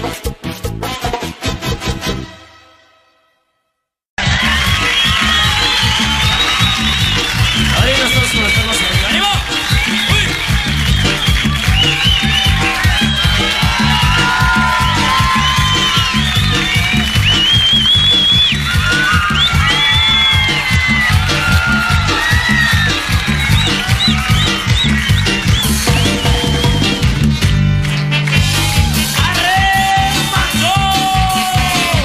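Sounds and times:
tuba bass line: 23.3 - 29.9
brass and clarinet melody: 27.8 - 28.8.

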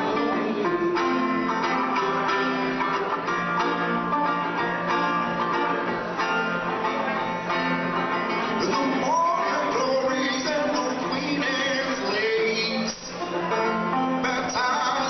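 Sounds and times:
person singing: 0.0 - 2.6, 8.4 - 15.0
acoustic plucked string instrument: 0.0 - 15.0.

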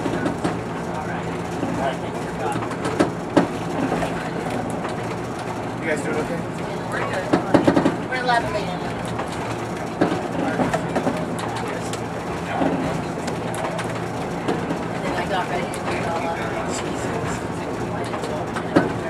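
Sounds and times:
diesel engines humming: 0.0 - 19.0
train wheels rumbling on track: 0.0 - 19.0.

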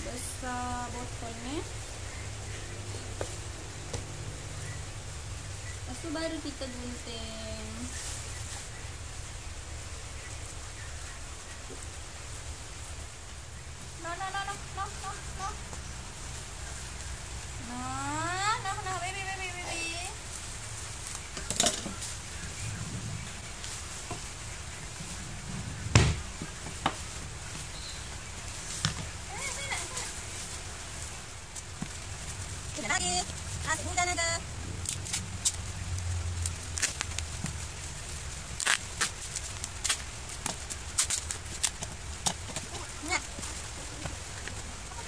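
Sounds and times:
sharp knocks: 25.9 - 27.0
bubble wrap rustling and crinkling: 34.7 - 44.7.

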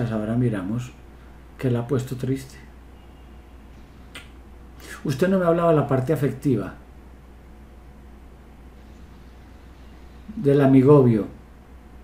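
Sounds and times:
low line hum: 0.0 - 12.0.

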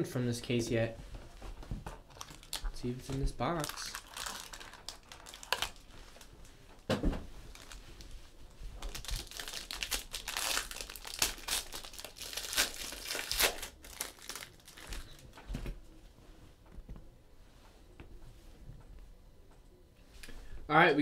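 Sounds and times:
foil wrapper tearing and crinkling: 2.1 - 6.3, 7.5 - 7.8, 8.8 - 15.2.

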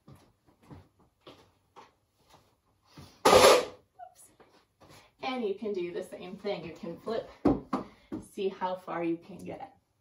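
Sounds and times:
footsteps running on floor: 0.0 - 3.1.

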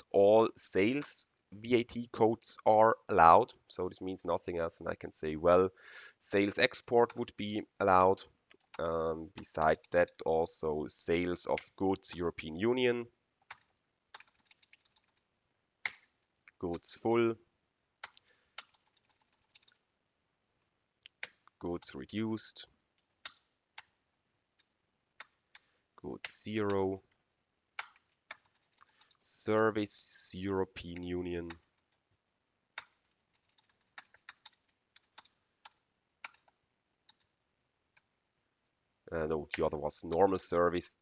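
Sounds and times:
computer mouse and keyboard clicks: 18.0 - 19.8, 27.8 - 29.2, 32.8 - 37.3.

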